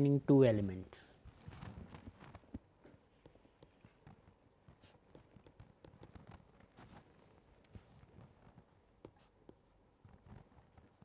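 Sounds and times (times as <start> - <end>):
stylus tapping on tablet screen: 3.2 - 6.5.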